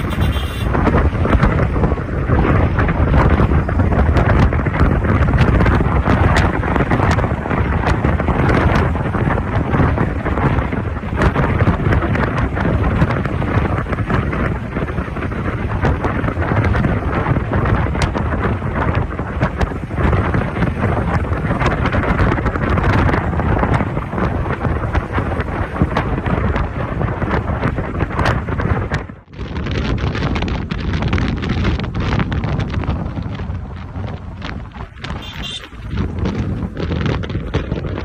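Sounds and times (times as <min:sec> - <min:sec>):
road and engine noise: 0:00.0 - 0:38.0
wind buffeting microphone: 0:00.0 - 0:38.0.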